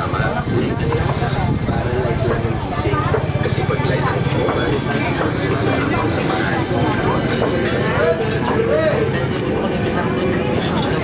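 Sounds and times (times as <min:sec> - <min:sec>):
busy market street noise: 0:00.0 - 0:11.0
people's voices: 0:00.0 - 0:11.0.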